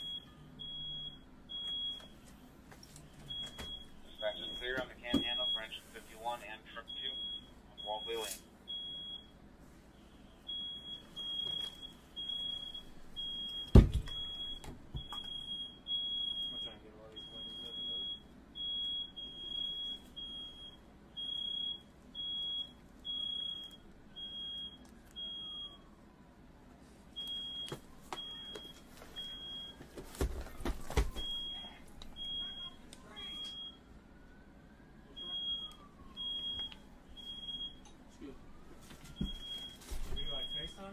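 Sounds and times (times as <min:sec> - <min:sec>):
smoke alarm beeping: 0:00.0 - 0:02.2, 0:03.2 - 0:06.0, 0:06.7 - 0:25.9, 0:27.2 - 0:33.9, 0:35.1 - 0:38.0, 0:39.0 - 0:40.9.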